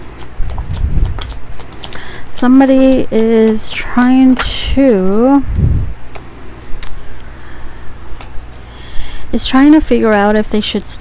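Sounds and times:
cards being shuffled: 0.0s - 2.1s, 8.0s - 8.7s
steady low hum: 0.0s - 11.0s.

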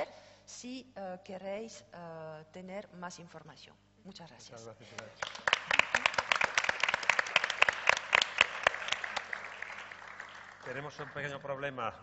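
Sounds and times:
audience applause: 5.2s - 11.4s.

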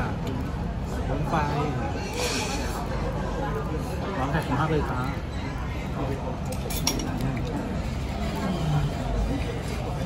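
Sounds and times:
restaurant chatter: 0.0s - 10.0s
tableware clinking: 6.5s - 7.2s.

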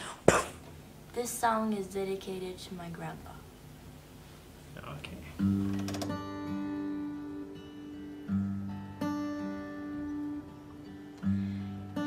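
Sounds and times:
acoustic guitar chords ringing: 5.4s - 12.0s.

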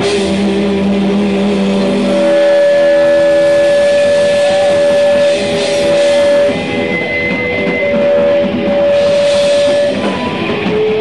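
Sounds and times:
electric guitar chord ringing: 0.0s - 11.0s.

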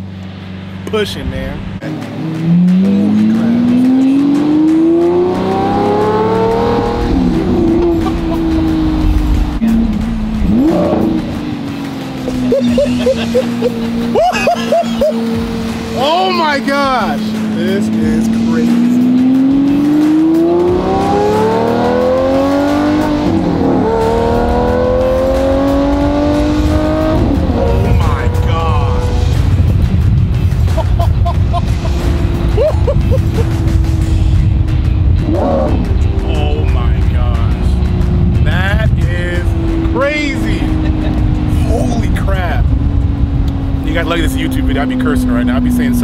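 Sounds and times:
car engine accelerating: 0.0s - 46.0s.

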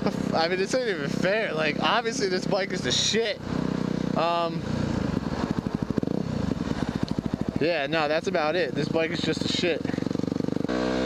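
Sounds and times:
motorcycle engine chugging: 0.0s - 11.0s.

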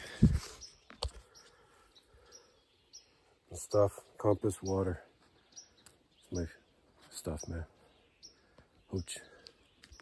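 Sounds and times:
faint bird chirps: 0.0s - 10.0s
woodland ambience: 0.0s - 10.0s.

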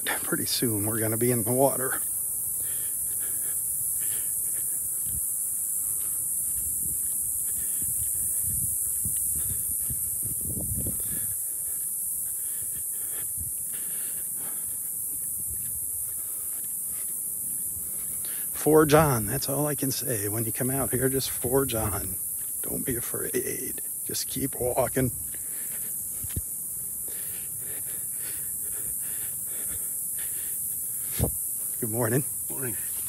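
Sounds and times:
footsteps on sandy trail: 0.0s - 33.0s
high-pitched insect drone: 0.0s - 33.0s
wind rumble on microphone: 4.9s - 11.5s, 13.1s - 13.6s, 15.3s - 16.1s, 31.1s - 31.5s.

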